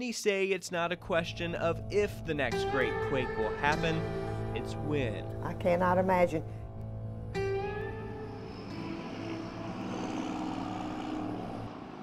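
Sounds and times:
guitar music: 0.9 - 11.9
street traffic passing: 7.8 - 12.0.

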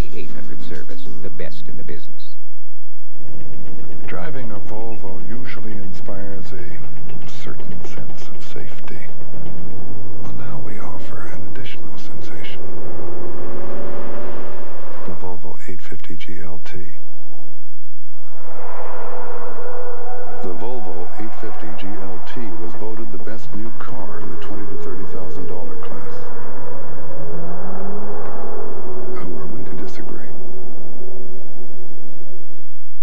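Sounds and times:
road noise: 3.2 - 17.0, 18.1 - 32.1
car engine hum driving past: 9.0 - 15.8, 18.2 - 32.0.

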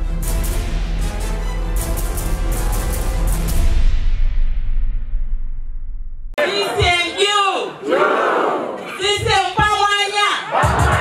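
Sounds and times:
woman shouting through a microphone: 6.4 - 7.8, 8.8 - 11.0
crowd shouting in unison: 6.4 - 9.2, 10.0 - 11.0.

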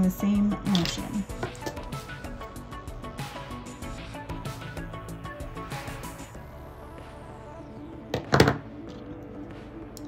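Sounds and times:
faint background music: 0.0 - 10.0
metal pliers clattering: 0.7 - 1.9.

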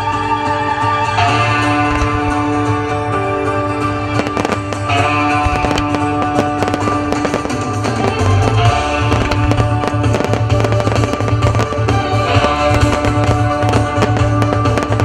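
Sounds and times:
music: 0.0 - 15.0
fireworks bangs and crackles: 1.4 - 2.8, 3.7 - 15.0.

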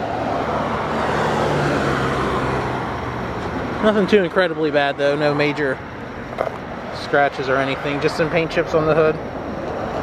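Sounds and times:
traffic going by: 0.0 - 10.0.

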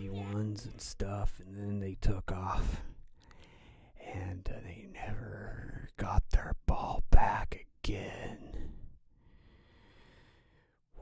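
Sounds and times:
man whispering: 0.0 - 3.3, 3.9 - 9.0.

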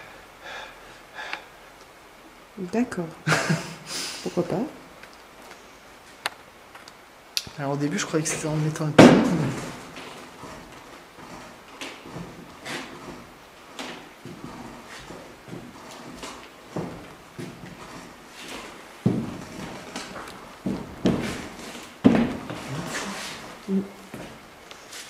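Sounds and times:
footsteps on creaking wooden plank: 8.3 - 24.5.

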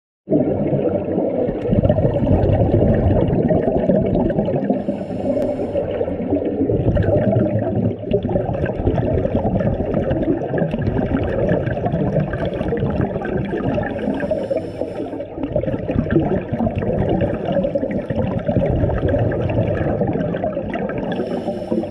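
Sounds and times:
muffled underwater bubbling: 0.3 - 21.9.

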